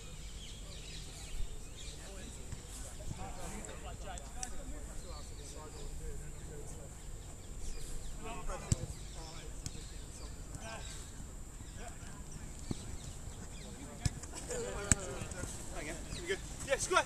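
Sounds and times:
footballers shouting: 13.8 - 17.0
football being kicked: 14.8 - 15.5.

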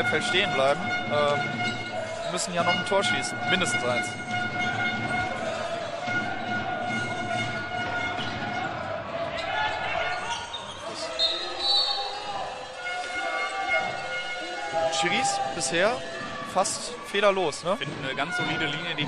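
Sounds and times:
shoes squeaking: 0.0 - 16.6
players calling: 0.0 - 19.0.

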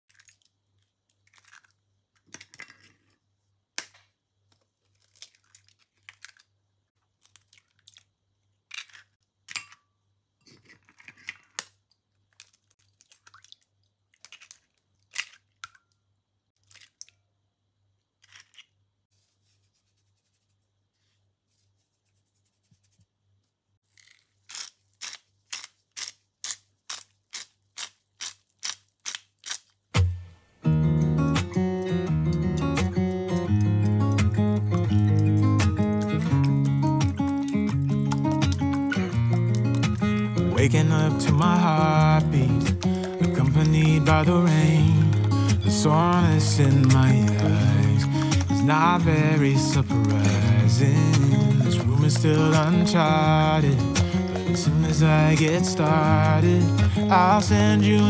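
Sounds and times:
eggshells cracking: 0.1 - 3.1, 4.6 - 9.6, 10.5 - 15.9, 18.2 - 18.8, 23.9 - 30.0, 31.8 - 57.7
pepper mill grinding: 23.9 - 29.8, 30.8 - 58.0.

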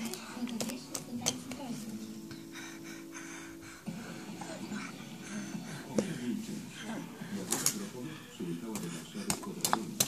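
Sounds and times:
television music: 0.0 - 10.0
television speech: 0.0 - 10.0.

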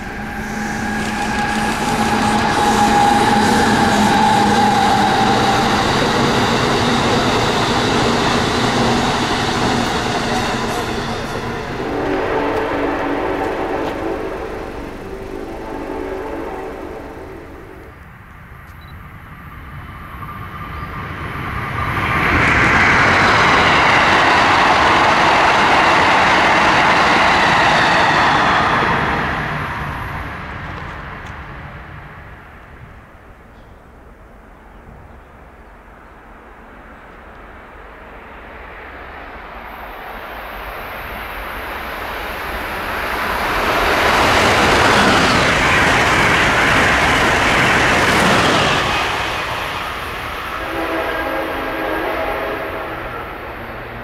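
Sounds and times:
train passing with whine: 0.0 - 54.0
train rushing past: 0.0 - 54.0.

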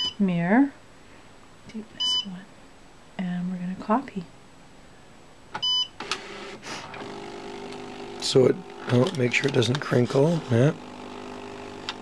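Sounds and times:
copier feed motor humming: 6.0 - 12.0.

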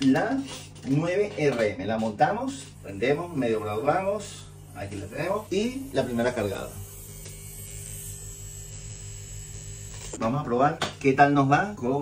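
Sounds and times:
tattoo machine buzzing: 1.9 - 12.0.

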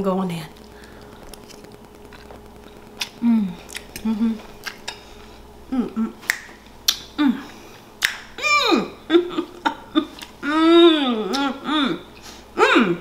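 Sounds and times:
woman humming while chewing: 3.0 - 5.0, 5.6 - 7.7, 8.4 - 13.0
finger snaps: 6.2 - 7.1, 8.0 - 8.3.

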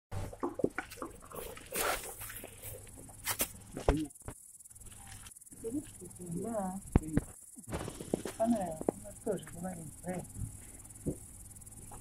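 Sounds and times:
scuffing and rustling: 0.9 - 4.1.

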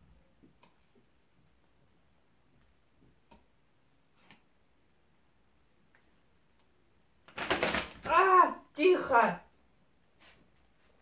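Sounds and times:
woman's wordless exclamations: 8.1 - 9.4.

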